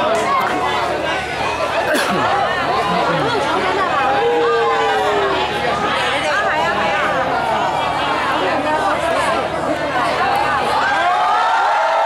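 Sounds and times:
crowd chatter: 0.0 - 12.0.

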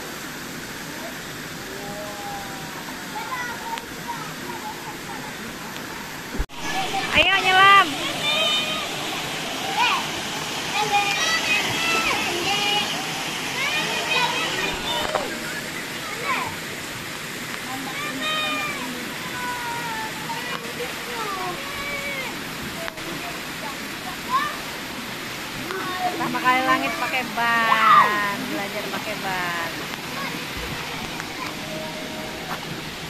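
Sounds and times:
churning pool water: 0.0 - 33.0
children's voices: 0.9 - 16.8, 17.7 - 33.0.

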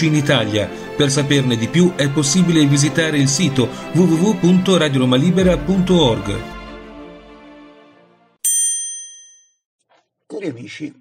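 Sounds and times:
intro music: 5.2 - 8.4
bright bell-like ding: 8.4 - 9.6.

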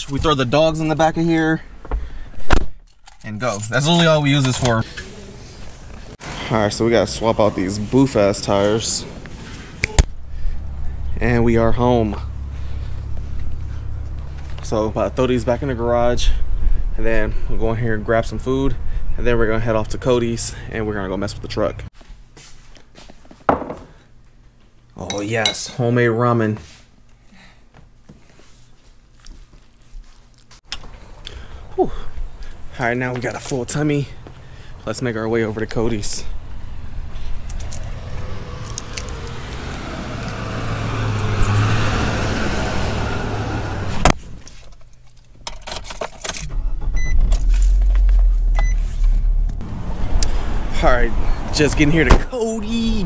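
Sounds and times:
footsteps: 33.0 - 34.7
low rumble: 35.5 - 41.8, 46.5 - 51.4
keys jangling: 44.5 - 46.5.

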